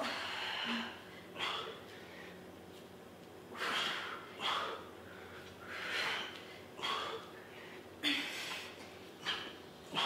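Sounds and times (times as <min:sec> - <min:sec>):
person breathing hard: 0:00.0 - 0:02.5, 0:03.5 - 0:10.0.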